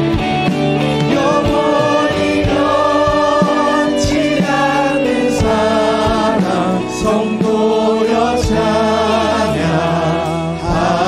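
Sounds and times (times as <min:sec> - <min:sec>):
band accompaniment with steady beat: 0:00.0 - 0:11.0
group singing praise song: 0:00.7 - 0:11.0.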